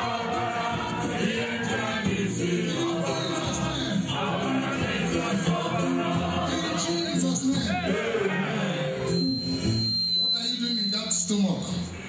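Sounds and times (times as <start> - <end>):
congregation singing: 0.0 - 9.4.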